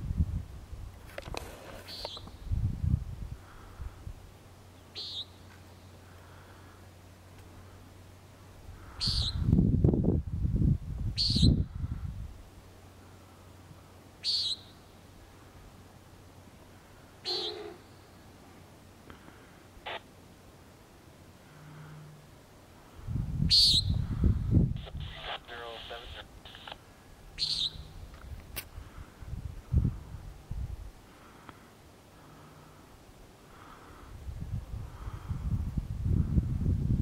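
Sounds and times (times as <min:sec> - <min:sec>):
nighthawk buzzy calls: 0:05.0 - 0:05.4, 0:14.2 - 0:14.7, 0:17.2 - 0:18.0, 0:27.4 - 0:28.0
muffled tinny radio voice: 0:24.8 - 0:26.8.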